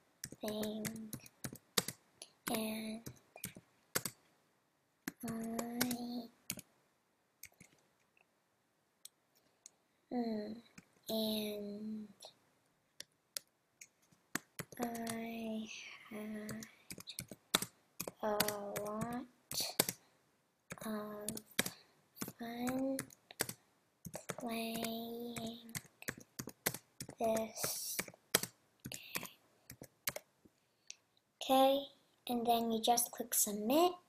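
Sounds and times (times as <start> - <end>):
keyboard keys clicking: 0.2 - 4.2, 5.1 - 6.6, 14.3 - 15.2, 16.4 - 20.0, 20.7 - 30.3.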